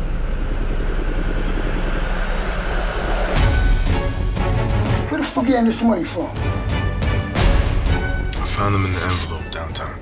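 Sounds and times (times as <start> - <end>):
rushing drone: 0.0 - 4.6.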